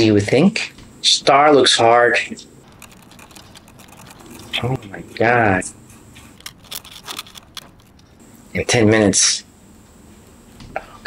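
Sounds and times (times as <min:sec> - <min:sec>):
needles scratching candy in tin: 0:02.6 - 0:04.8, 0:06.2 - 0:08.2
brittle sugar crackling: 0:02.7 - 0:04.8, 0:06.3 - 0:08.2.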